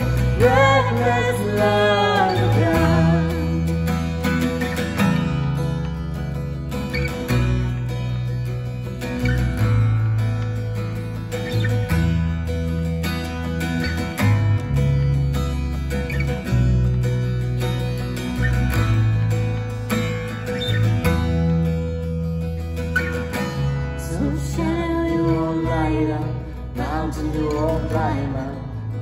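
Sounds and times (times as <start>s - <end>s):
acoustic guitar strummed: 0.0s - 29.0s
electric bass long notes: 0.0s - 29.0s.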